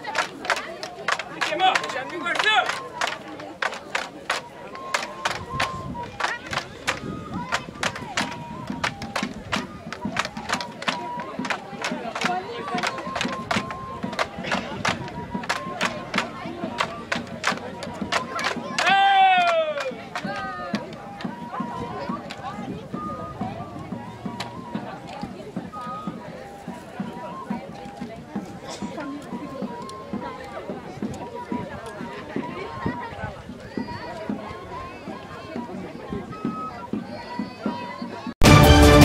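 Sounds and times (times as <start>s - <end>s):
bamboo poles clacking: 0.0s - 21.4s
person shouting a call: 18.8s - 20.0s.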